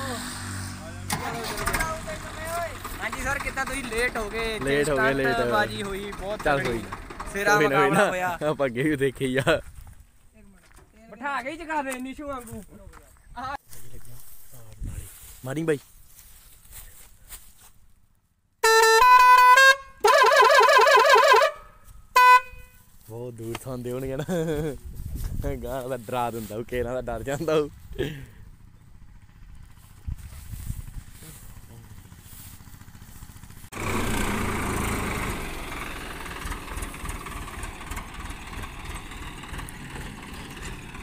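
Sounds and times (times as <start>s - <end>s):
tractor engine working hard: 0.0s - 8.4s, 27.6s - 41.0s
tractor diesel engine idling: 0.2s - 9.1s, 25.7s - 41.0s
multi-tone musical horn: 18.6s - 22.9s.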